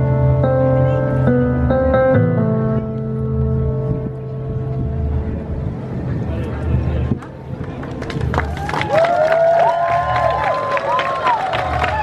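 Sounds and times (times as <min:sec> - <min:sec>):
crowd clapping and whooping: 0:07.2 - 0:12.0.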